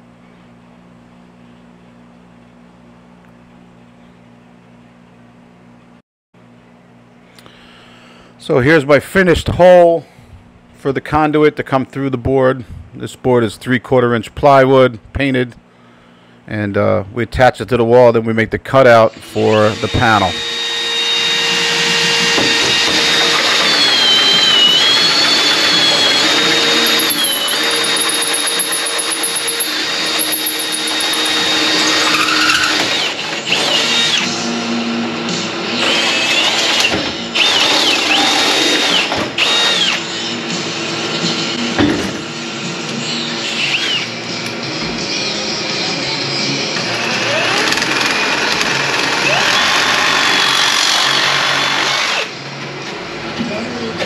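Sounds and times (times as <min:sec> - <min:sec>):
drill cutting through sheet steel: 0:19.1 - 0:41.0, 0:43.4 - 0:44.2, 0:46.8 - 0:52.4
background music: 0:40.0 - 0:49.4.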